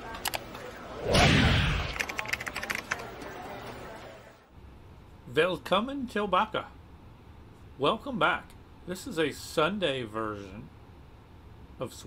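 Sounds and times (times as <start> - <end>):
loud whoosh: 1.0 - 2.0
keyboard typing clicks: 1.9 - 3.2.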